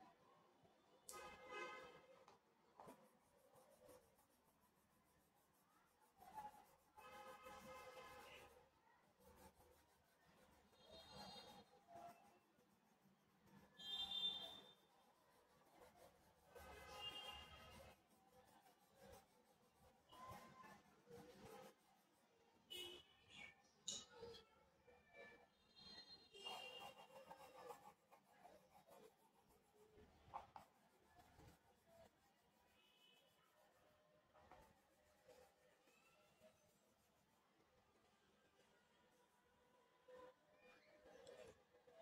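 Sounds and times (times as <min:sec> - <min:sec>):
pencil scratching on paper: 0:02.3 - 0:22.4, 0:25.2 - 0:37.4.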